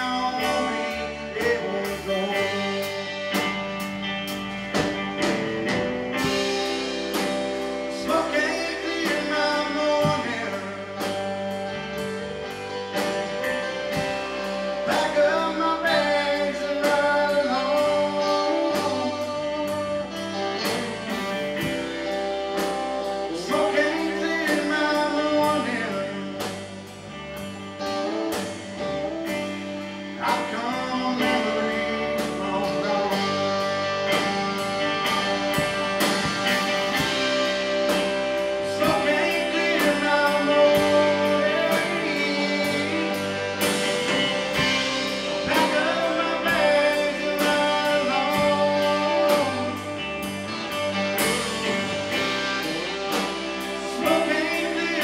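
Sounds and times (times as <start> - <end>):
male lead vocal: 0.0 - 3.7, 6.2 - 12.2, 13.3 - 27.0, 29.4 - 55.0
bass guitar: 0.0 - 55.0
drum kit beat: 0.0 - 55.0
electric guitars: 0.0 - 55.0.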